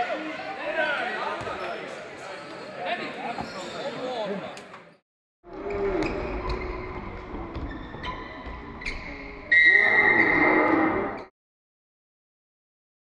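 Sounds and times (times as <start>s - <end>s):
crowd in basketball hall: 0.0s - 9.8s.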